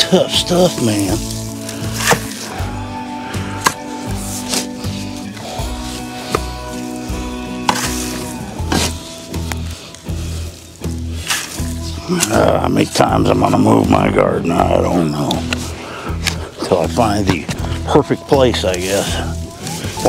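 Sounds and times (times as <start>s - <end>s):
background music: 0.0s - 20.0s
shovel scraping hard soil: 1.0s - 2.6s, 3.6s - 9.1s, 11.0s - 11.8s.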